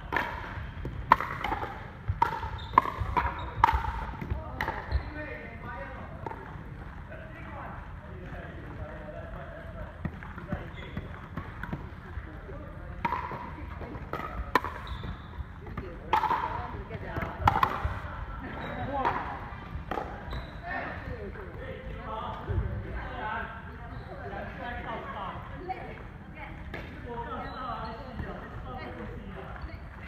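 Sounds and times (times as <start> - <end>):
ball bouncing on wooden court: 0.0 - 5.2, 10.0 - 12.2, 13.0 - 18.1
paddle striking plastic ball: 0.1 - 4.8, 16.1 - 16.6, 17.2 - 18.0.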